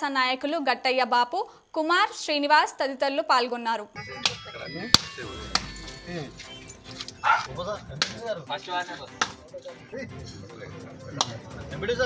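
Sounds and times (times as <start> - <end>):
crowd voices: 4.0 - 8.2.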